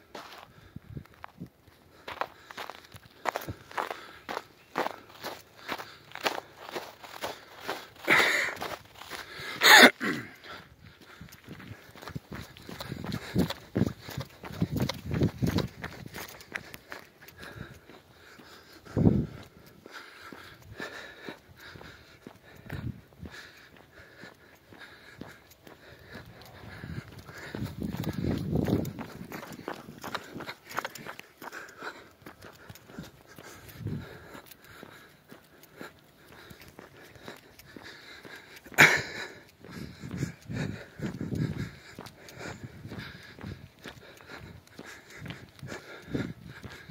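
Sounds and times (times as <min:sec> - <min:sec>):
footfalls on a paved path: 0:00.0 - 0:46.9
runner breathing heavily: 0:00.0 - 0:46.9.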